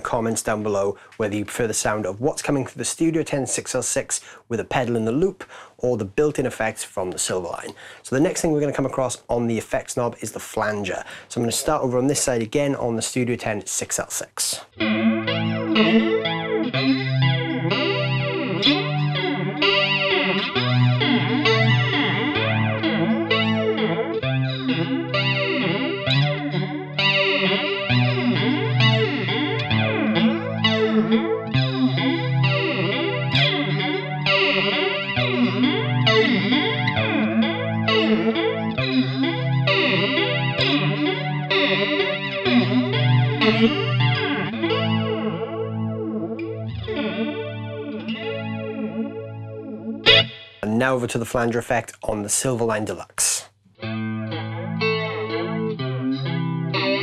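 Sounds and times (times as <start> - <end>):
electric guitar strummed chords: 14.7 - 51.6, 53.8 - 57.0.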